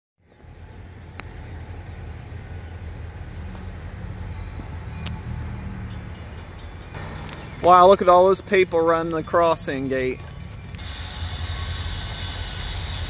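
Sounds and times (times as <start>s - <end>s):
distant diesel locomotive rumble: 0.2s - 13.0s.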